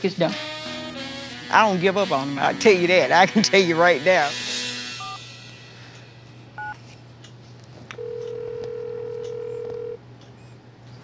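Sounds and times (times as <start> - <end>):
phone ringback tone: 5.0 - 5.2, 8.0 - 10.0
phone keypad tones: 8.0 - 10.0.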